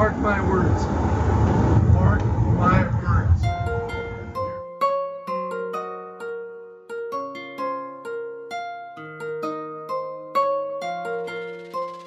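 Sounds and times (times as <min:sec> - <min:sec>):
man talking: 0:00.0 - 0:00.9, 0:01.9 - 0:03.5
road and engine rumble inside car: 0:00.0 - 0:03.9.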